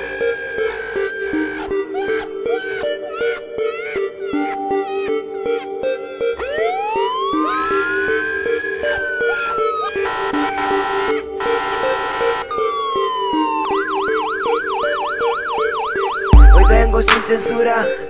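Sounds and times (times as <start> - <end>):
police siren wailing and yelping: 0.0 - 16.8
rap instrumental loop: 0.1 - 18.0.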